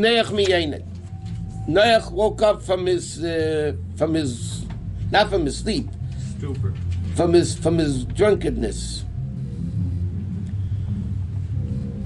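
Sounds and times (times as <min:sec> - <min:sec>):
faint hum: 0:00.0 - 0:12.0
low background rumble: 0:00.0 - 0:12.0.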